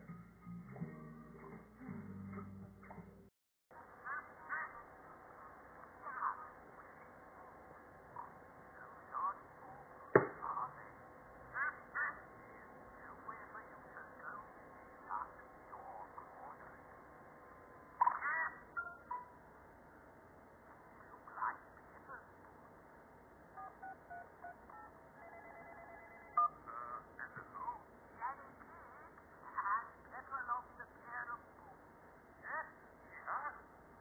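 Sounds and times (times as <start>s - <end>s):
keypad beeps: 18.8s - 19.4s, 23.6s - 26.6s
warbling telephone ring: 24.1s - 26.5s.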